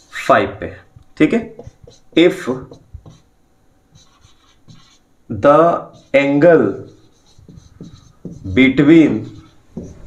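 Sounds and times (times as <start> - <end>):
marker scratching on whiteboard: 1.2 - 3.3, 3.9 - 5.1, 5.7 - 10.0.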